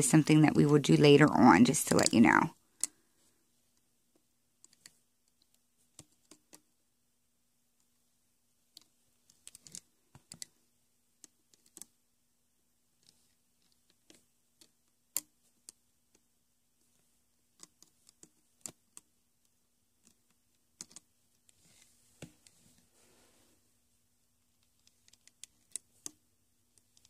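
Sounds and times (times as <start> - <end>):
hook clicking on plastic pins: 8.7 - 10.6, 11.2 - 12.0, 13.0 - 16.3, 17.5 - 21.5, 24.5 - 27.0.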